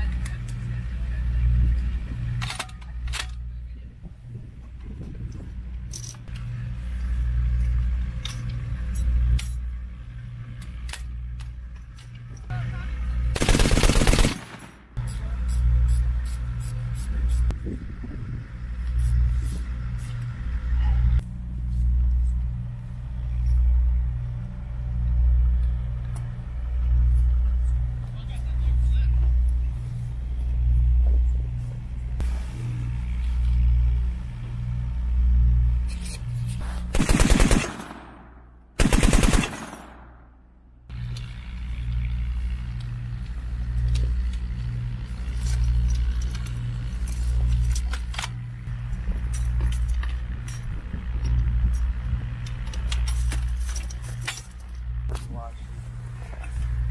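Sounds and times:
low throbbing: 3.4s - 47.8s
machine gun bursts: 13.4s - 14.8s, 36.9s - 38.2s, 38.8s - 40.1s.

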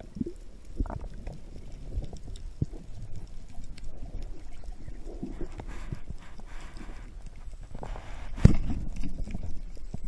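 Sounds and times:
low underwater rumble: 0.0s - 10.0s.

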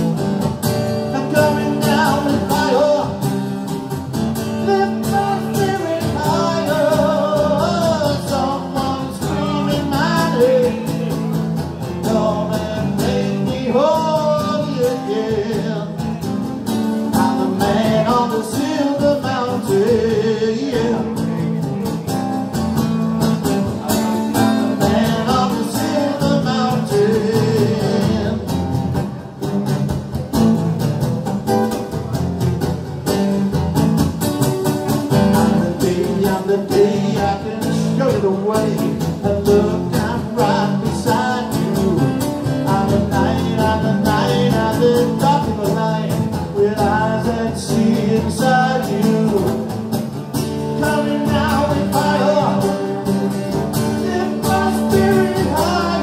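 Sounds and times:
amplified electric guitar: 0.0s - 56.0s
man singing: 0.9s - 22.1s, 23.3s - 28.9s, 34.9s - 56.0s.

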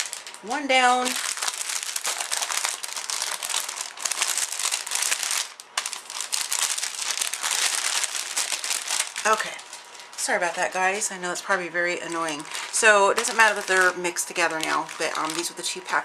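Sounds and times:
cellophane crinkling: 0.0s - 16.0s.

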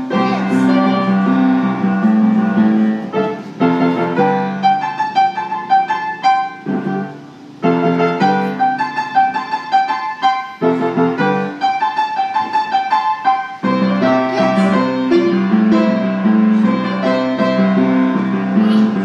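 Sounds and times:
piano melody over chords: 0.0s - 19.0s.

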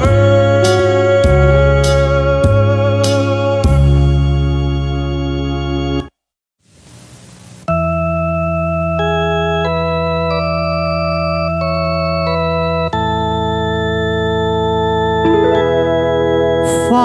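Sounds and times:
electronic organ playing chords: 0.0s - 6.1s, 7.7s - 17.0s.

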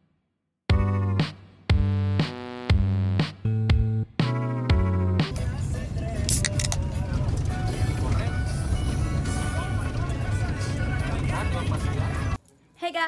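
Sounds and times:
music: 0.7s - 12.4s
engine and road rumble: 4.6s - 12.4s
voices: 9.2s - 13.0s.

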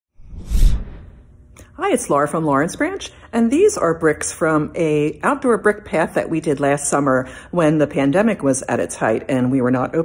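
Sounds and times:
short loud whoosh: 0.2s - 1.3s
woman speaking: 1.6s - 10.0s.

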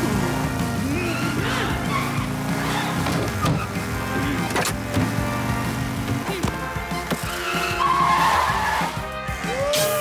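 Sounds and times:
background music: 0.0s - 10.0s
skidding squeal: 0.9s - 3.9s, 7.2s - 9.0s.

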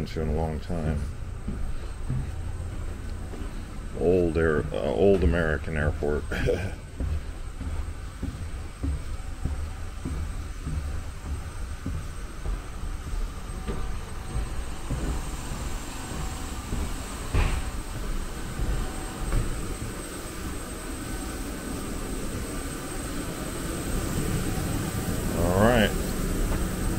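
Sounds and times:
faint high whine: 0.0s - 26.9s
low uneven rumble: 0.0s - 26.9s
footsteps: 0.2s - 25.2s
loud thump: 16.7s - 17.8s.

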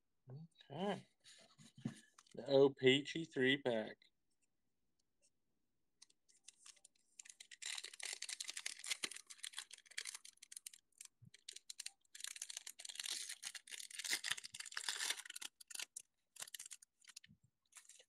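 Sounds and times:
foil wrapper crinkling and tearing: 6.0s - 18.0s.

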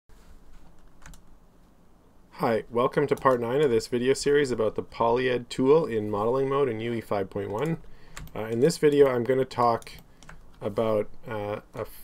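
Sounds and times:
low room hum: 0.1s - 12.0s
faint computer keyboard clicks: 7.4s - 8.7s.

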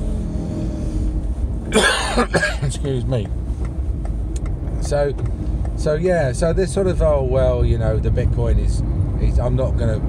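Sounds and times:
car cabin rumble: 0.0s - 10.0s
man coughing: 1.7s - 2.8s.

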